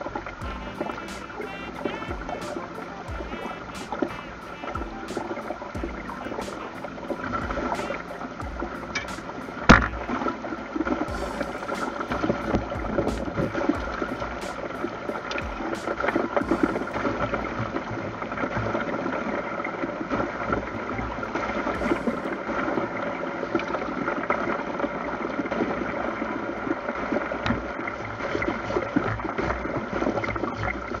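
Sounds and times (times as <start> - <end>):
water splashing: 0.0 - 31.0.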